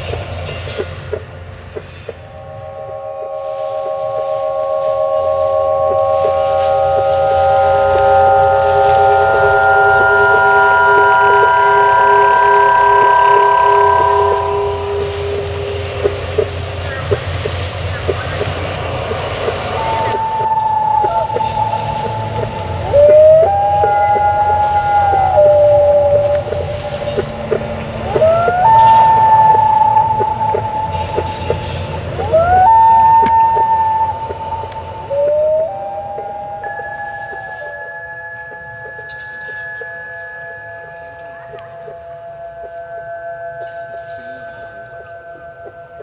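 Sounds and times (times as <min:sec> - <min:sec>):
sliding sustained musical notes: 0:00.0 - 0:46.0
bell-like ringing tone: 0:02.2 - 0:17.8, 0:18.4 - 0:46.0.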